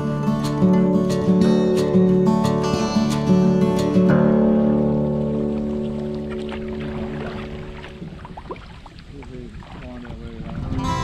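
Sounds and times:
strummed acoustic guitar chord: 0.0s - 8.1s, 10.6s - 11.0s
paddle splashing and dripping in water: 4.4s - 11.0s.

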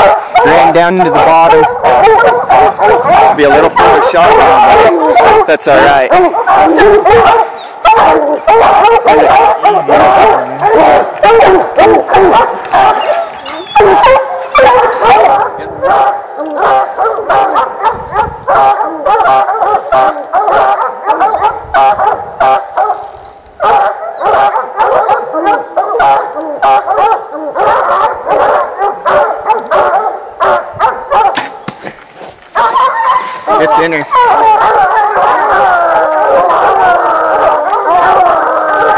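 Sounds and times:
hounds baying: 0.0s - 38.9s
sharp click: 31.3s - 31.9s.

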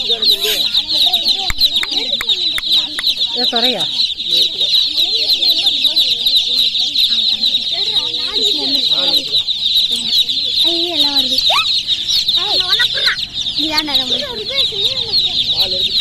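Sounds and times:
baby chicks peeping: 0.0s - 16.0s.

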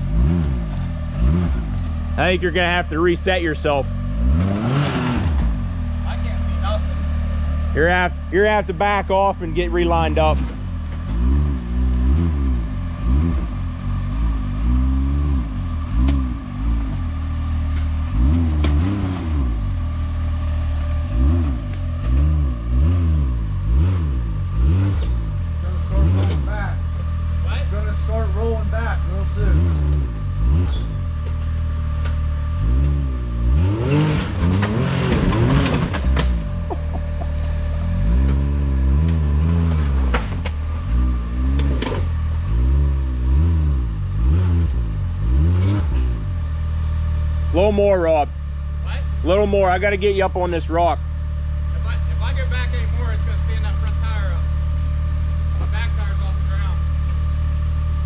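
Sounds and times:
engine revving in bursts: 0.0s - 58.0s.

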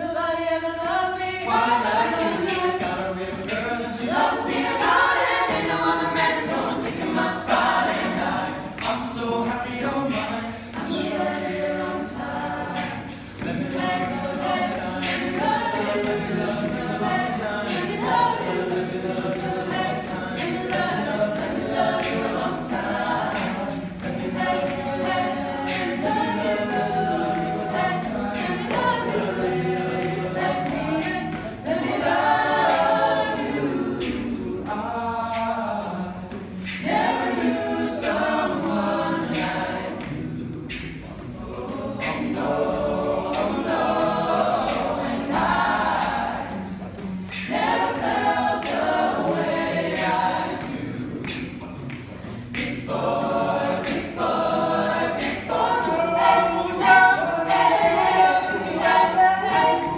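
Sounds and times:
mixed voices singing a cappella: 0.0s - 59.9s.

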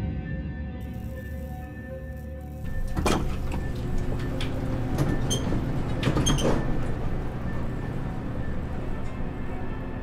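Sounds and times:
eerie organ music: 0.0s - 10.0s
elevator low rumble: 0.8s - 10.0s
faint music: 0.8s - 10.0s
elevator clicks and knocks: 2.6s - 9.8s.

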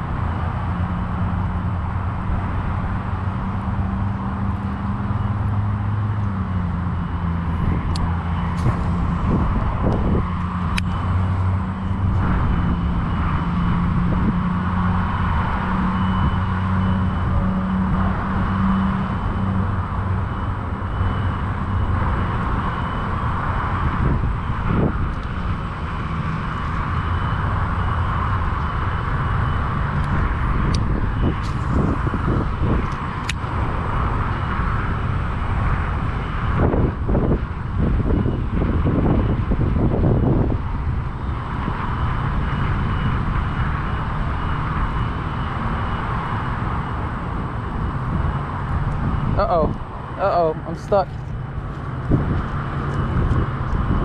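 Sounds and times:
distant traffic: 0.0s - 54.0s
low engine hum: 0.0s - 54.0s
wind on microphone: 0.0s - 54.0s.

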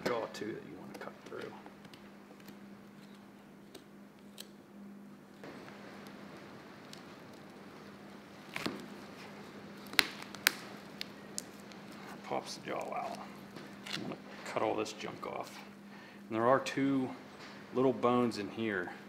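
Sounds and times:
steady low hum: 0.0s - 19.0s
sharp bone cracks: 9.8s - 11.5s.

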